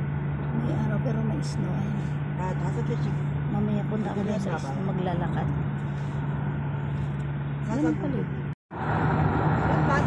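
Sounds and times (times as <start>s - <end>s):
vehicle road and engine drone: 0.0s - 10.0s.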